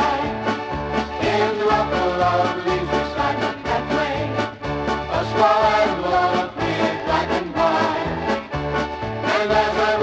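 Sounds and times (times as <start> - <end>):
polka band playing: 0.0 - 10.0.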